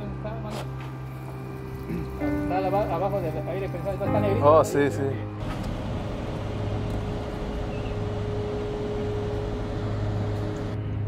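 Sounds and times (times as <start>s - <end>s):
car road and engine noise: 5.3s - 11.0s
low hum: 5.4s - 11.0s.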